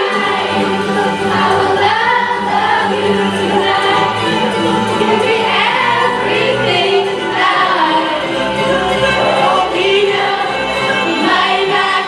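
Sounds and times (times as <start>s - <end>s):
young voices singing: 0.0s - 12.0s
amplified music: 0.5s - 12.0s.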